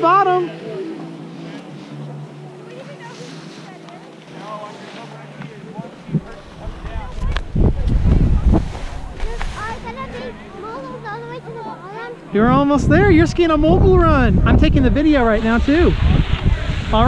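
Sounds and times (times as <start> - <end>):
faint voices: 0.0 - 17.0
skis scraping on slushy snow: 2.7 - 5.4
wind buffeting microphone: 6.0 - 10.6, 12.4 - 17.0.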